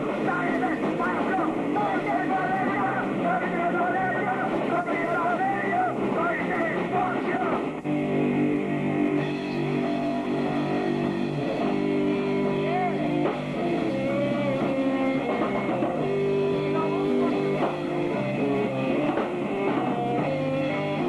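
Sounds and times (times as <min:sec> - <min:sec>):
drum kit: 0:00.0 - 0:21.0
electric guitar chords: 0:00.0 - 0:21.0.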